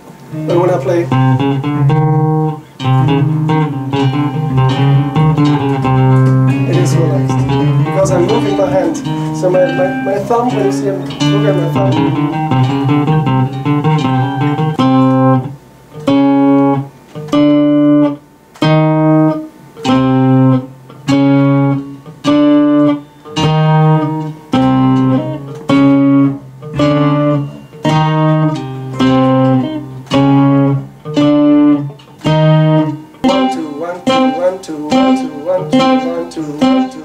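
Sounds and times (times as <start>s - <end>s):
tapped guitar chords: 0.0s - 37.0s.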